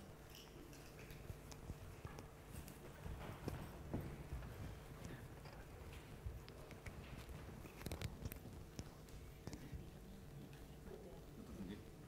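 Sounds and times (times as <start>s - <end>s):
low room hum: 0.0s - 12.0s
footsteps and knocks on stage: 2.8s - 6.4s.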